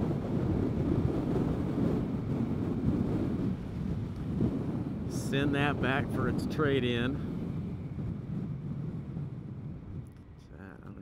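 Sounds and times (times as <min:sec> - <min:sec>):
wind rush: 0:00.0 - 0:11.0.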